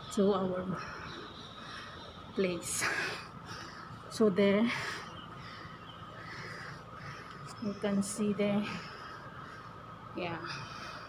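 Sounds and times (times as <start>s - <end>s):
faint outdoor background hum: 0.0s - 11.0s.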